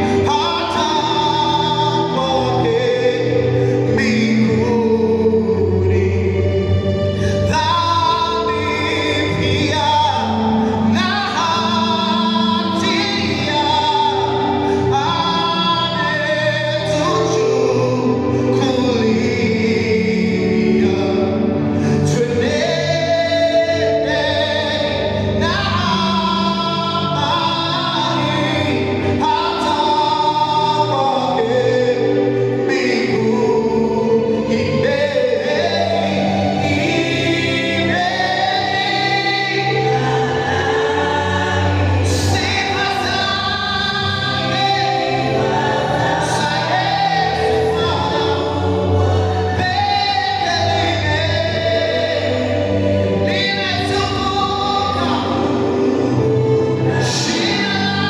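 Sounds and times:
man singing lead vocal: 0.0s - 58.0s
women backing singers: 22.0s - 58.0s.

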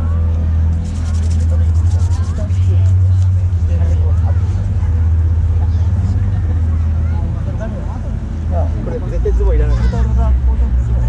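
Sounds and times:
loud low rumble: 0.0s - 11.0s
people talking: 0.0s - 11.0s.

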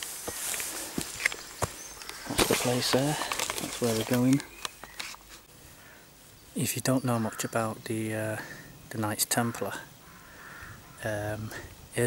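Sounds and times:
footsteps on dry leaves: 0.0s - 5.5s.

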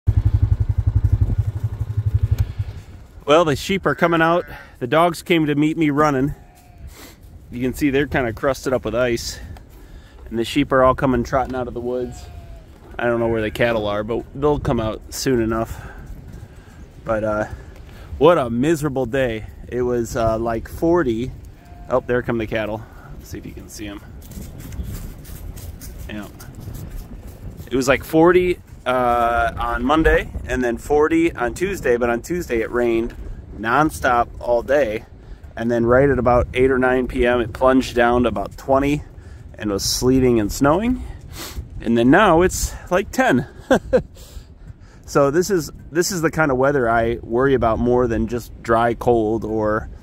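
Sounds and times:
atv engine idling: 0.1s - 3.0s
wind rumbling on microphone: 0.1s - 50.0s
footsteps crunching on snow: 23.1s - 28.0s.

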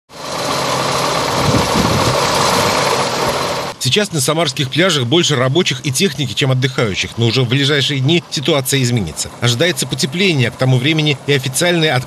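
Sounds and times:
diesel engine running: 0.1s - 12.0s.

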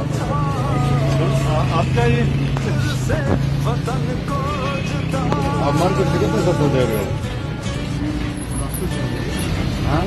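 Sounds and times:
music playing: 0.0s - 10.0s
street traffic: 0.0s - 10.0s
voices: 0.0s - 10.0s.

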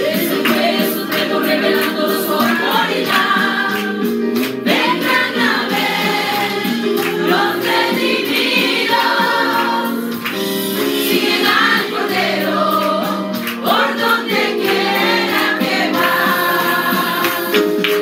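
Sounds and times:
women singing religious song: 0.0s - 4.1s, 4.7s - 10.0s, 11.0s - 17.6s.

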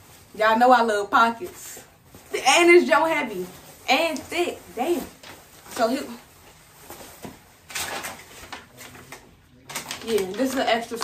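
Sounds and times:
nylon jacket rustling: 0.0s - 9.2s
paper rustling: 1.3s - 11.0s.

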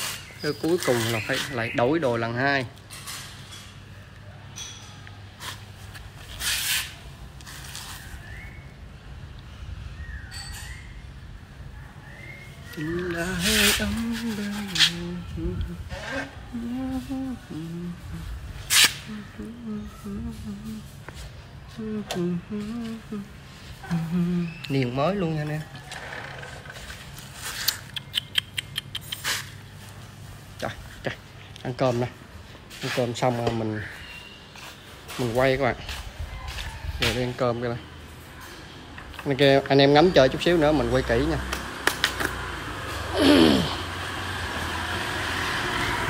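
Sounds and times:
man humming: 12.8s - 21.0s, 21.8s - 24.7s, 43.1s - 44.0s.

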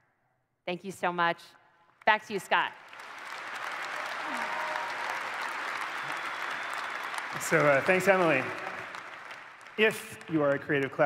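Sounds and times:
audience applauding: 2.5s - 11.0s.

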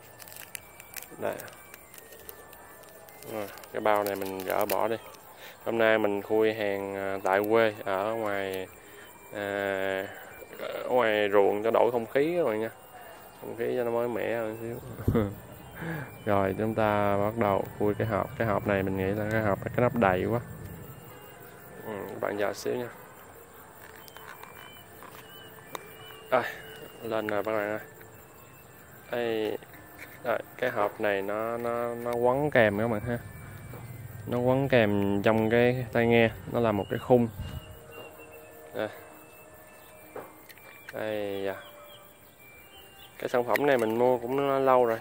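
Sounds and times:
plastic case clicking in hand: 0.0s - 5.3s, 23.8s - 27.5s, 39.8s - 41.0s, 43.0s - 44.0s
plastic case ticking: 0.0s - 9.3s, 14.3s - 38.2s, 39.1s - 41.1s, 42.4s - 45.0s
faint high chirps: 0.0s - 45.0s.

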